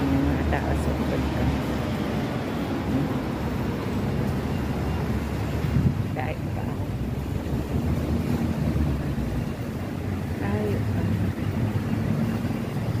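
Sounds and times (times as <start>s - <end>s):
city traffic rumble: 0.0s - 13.0s
wind buffeting microphone: 0.0s - 13.0s.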